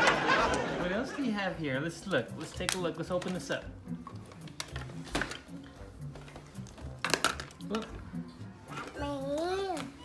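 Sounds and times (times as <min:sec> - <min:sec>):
plastic toys clattering: 0:02.4 - 0:05.6, 0:06.2 - 0:07.9.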